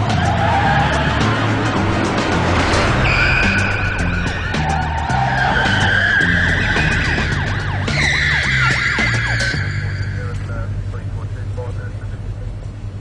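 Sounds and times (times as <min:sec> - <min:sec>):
car tyres squealing: 0:00.0 - 0:10.9
dramatic music with stepping bass: 0:00.0 - 0:11.3.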